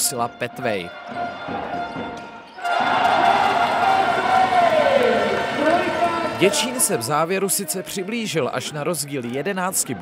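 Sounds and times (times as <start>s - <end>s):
background music: 0.0s - 10.0s
crowd cheering: 1.3s - 8.2s.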